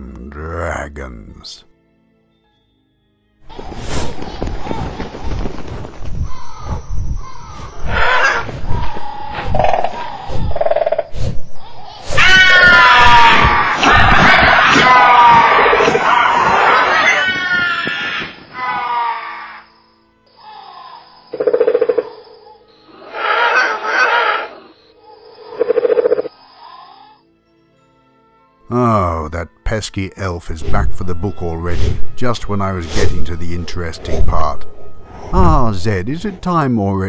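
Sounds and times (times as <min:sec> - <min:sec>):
faint background music: 0:00.0 - 0:10.3, 0:26.4 - 0:37.0
dragon roar: 0:22.9 - 0:24.7.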